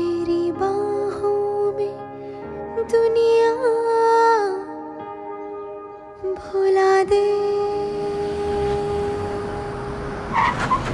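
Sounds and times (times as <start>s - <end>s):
low vehicle engine rumble: 7.2s - 10.9s.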